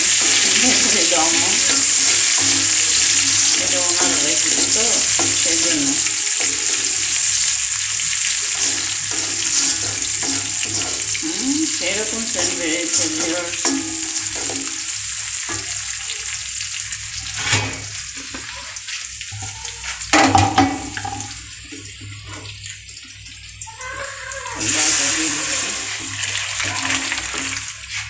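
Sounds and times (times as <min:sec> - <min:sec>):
onions sizzling in hot oil: 0:00.0 - 0:28.0
wooden spatula knocking a pan: 0:08.4 - 0:11.2, 0:12.4 - 0:15.8, 0:20.1 - 0:21.4.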